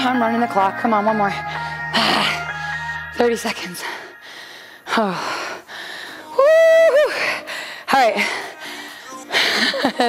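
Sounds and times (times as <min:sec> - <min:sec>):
woman breathing hard: 0:03.8 - 0:09.9.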